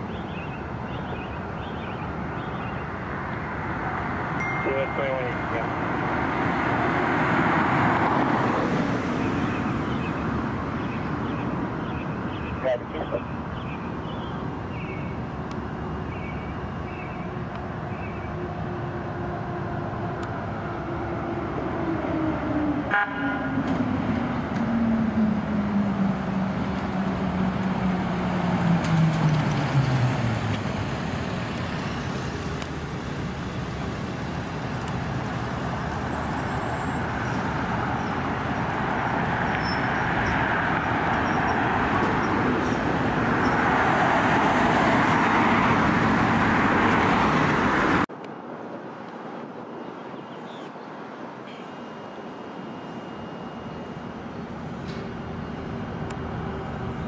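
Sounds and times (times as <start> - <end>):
road and engine noise: 0.0 - 57.0.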